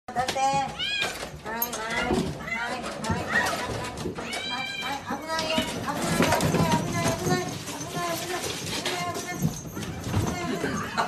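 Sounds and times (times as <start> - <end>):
cats meowing: 0.7 - 8.0.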